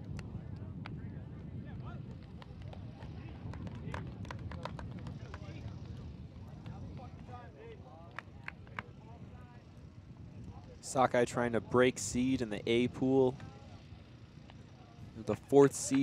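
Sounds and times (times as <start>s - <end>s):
low wind rumble: 0.0s - 16.0s.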